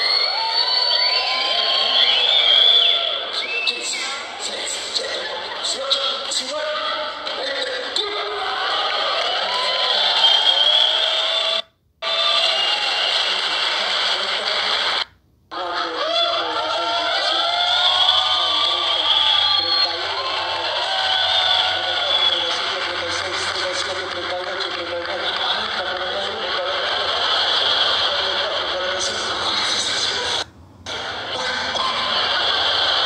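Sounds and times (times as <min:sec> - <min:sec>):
crowd talking and calling out: 0:00.0 - 0:33.0.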